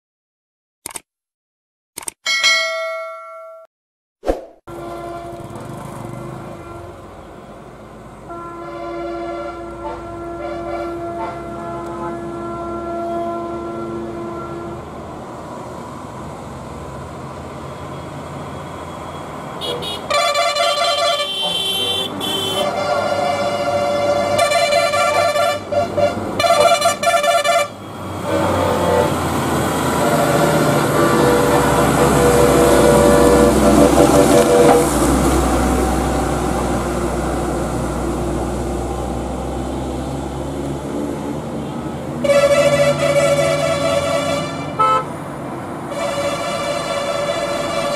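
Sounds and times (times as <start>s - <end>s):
motorcycle engines passing: 4.7s - 7.2s
vehicle horns honking: 4.7s - 7.2s, 8.3s - 14.8s, 19.6s - 34.8s, 42.2s - 45.2s, 45.9s - 47.9s
lorry diesel engine rumble: 4.7s - 47.9s.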